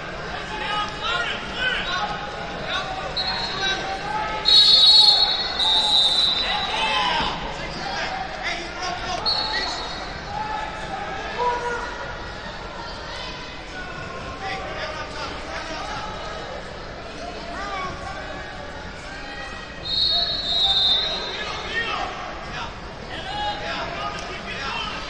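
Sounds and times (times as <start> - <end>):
crowd chatter in a hall: 0.0 - 25.0
shrill whistle blasts: 3.2 - 3.6, 4.4 - 7.0, 9.2 - 10.1, 19.8 - 21.7.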